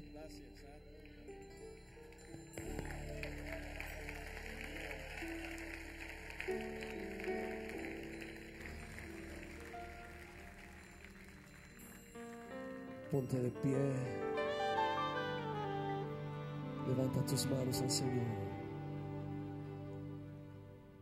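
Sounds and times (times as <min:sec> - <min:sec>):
soft worship band music: 0:00.0 - 0:21.0
audience noise hiss: 0:02.6 - 0:11.6.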